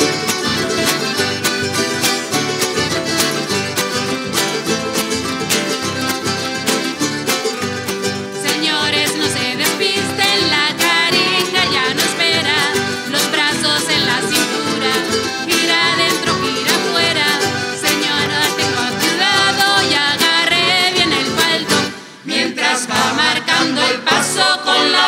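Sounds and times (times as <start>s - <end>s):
string band playing dance music: 0.0s - 25.0s
people singing: 8.4s - 25.0s.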